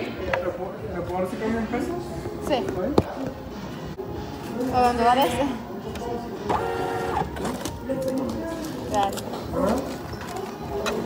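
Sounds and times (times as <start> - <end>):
receipt printer whirring: 6.3 - 7.8.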